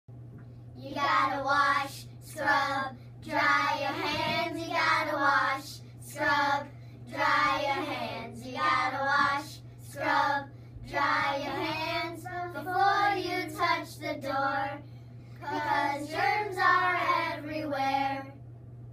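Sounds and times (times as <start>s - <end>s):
young children singing: 0.9s - 14.8s, 15.4s - 18.3s.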